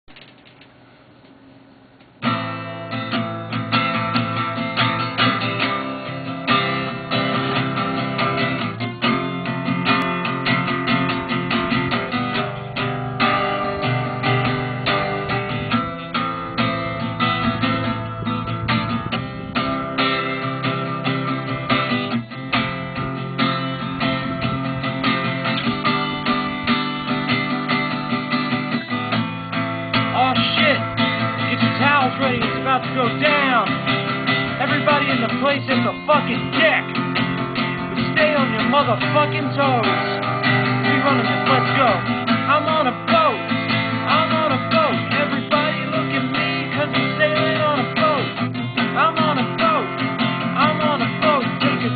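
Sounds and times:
acoustic guitar strumming chords: 2.2 - 51.9.

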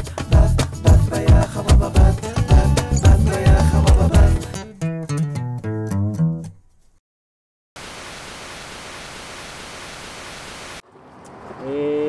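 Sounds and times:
television static hiss: 7.8 - 10.8.

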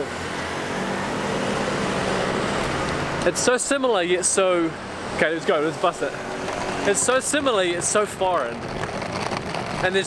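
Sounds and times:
city street traffic: 0.0 - 10.0
vehicle engine hum: 0.0 - 10.0.

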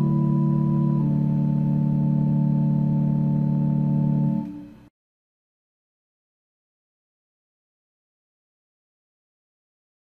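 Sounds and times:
organ chord: 0.0 - 4.9.

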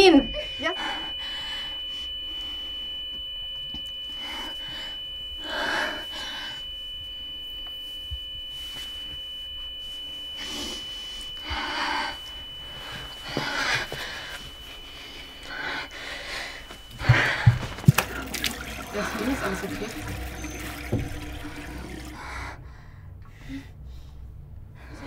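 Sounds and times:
high-pitched ringing tone: 0.0 - 22.6.

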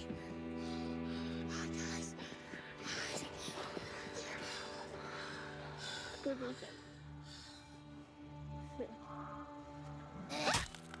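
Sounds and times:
low drone score: 0.0 - 11.0.

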